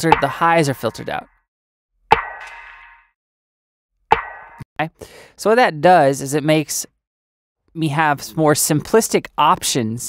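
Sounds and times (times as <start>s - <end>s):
dull electronic snare hit: 2.1s - 3.1s, 4.1s - 4.6s.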